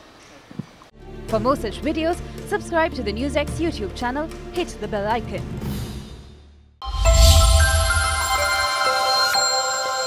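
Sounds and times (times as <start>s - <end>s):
low boom: 6.8s - 8.6s
electronic chime tones: 6.8s - 10.0s.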